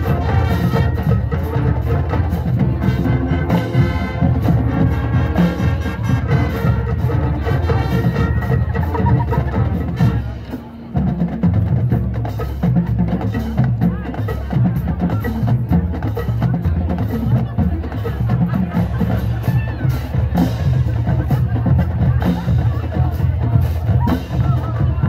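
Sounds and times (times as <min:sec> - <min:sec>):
bass drums: 0:00.0 - 0:25.0
marching band playing: 0:00.0 - 0:25.0.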